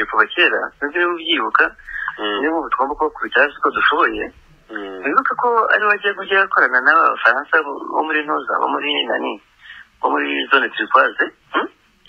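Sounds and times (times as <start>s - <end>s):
person talking over radio: 0.0s - 9.4s.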